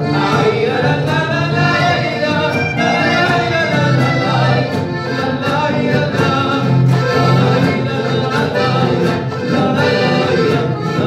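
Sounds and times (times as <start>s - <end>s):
accordion: 0.0s - 11.0s
charango: 0.0s - 11.0s
men singing together: 0.0s - 11.0s
strummed acoustic guitars: 0.0s - 11.0s.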